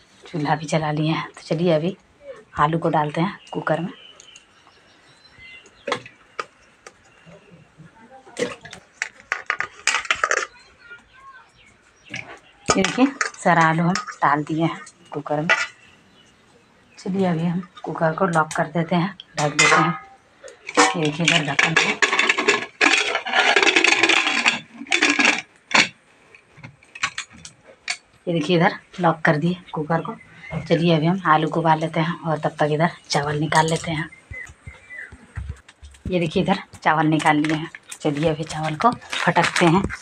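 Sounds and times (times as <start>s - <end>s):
metal scraping on metal: 19.4s - 26.0s.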